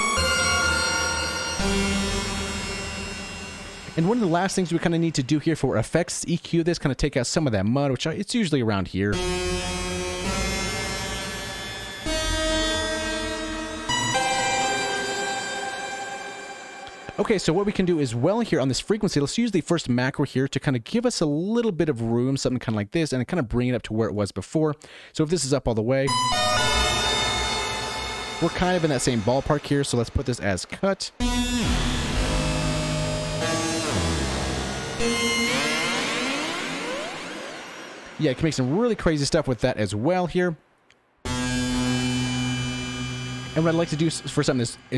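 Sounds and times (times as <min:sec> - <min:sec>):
dissonant synth chord: 0:00.0 - 0:05.4, 0:09.2 - 0:18.3, 0:26.1 - 0:30.2, 0:31.2 - 0:38.8, 0:41.3 - 0:44.9.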